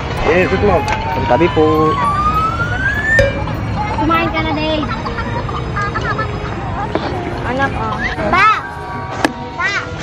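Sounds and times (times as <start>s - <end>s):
siren-like tone gliding upward: 0.2s - 4.6s.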